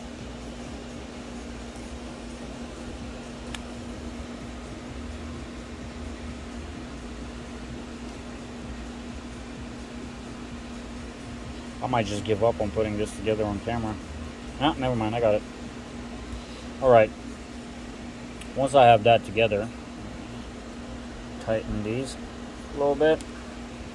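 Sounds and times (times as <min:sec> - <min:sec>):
fan hum: 0:00.0 - 0:23.9
light click: 0:03.5 - 0:03.7.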